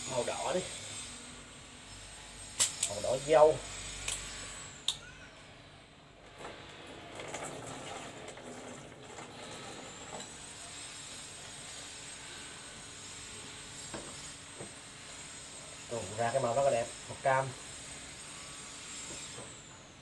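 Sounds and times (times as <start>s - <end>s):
fizzy soda pouring into jar: 7.1s - 10.2s.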